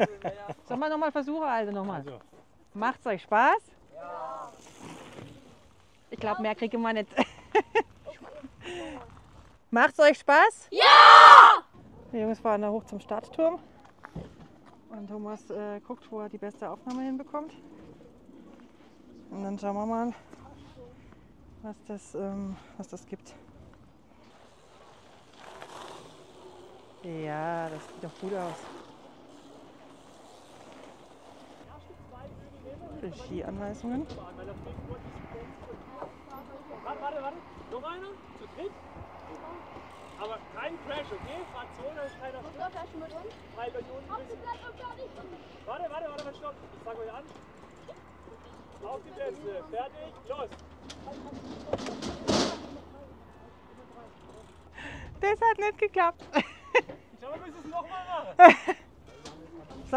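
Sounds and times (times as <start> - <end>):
bikes setting off from wooden platform: 4.2 - 6.4, 23.6 - 32.2, 50.2 - 55.0
bike tyres rolling on gravel: 4.5 - 6.2, 23.5 - 43.5.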